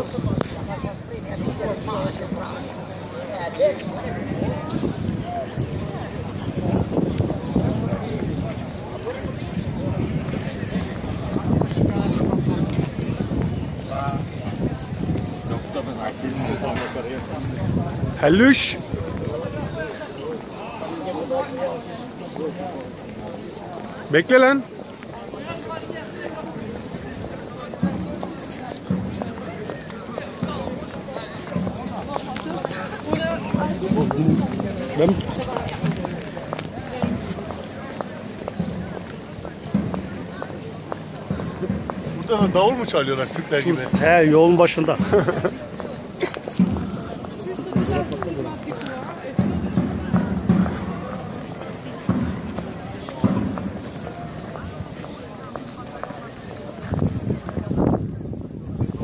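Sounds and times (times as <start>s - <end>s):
footsteps on stone paving: 0.0s - 59.0s
people chattering: 0.0s - 59.0s
people talking: 0.0s - 59.0s
large drum thumps: 46.6s - 47.0s, 47.7s - 48.2s, 49.3s - 51.4s, 52.0s - 53.9s.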